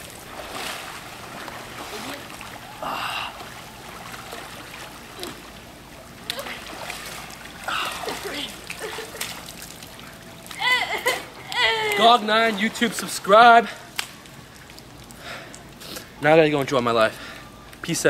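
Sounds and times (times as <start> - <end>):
pool water splashing: 0.0 - 18.0.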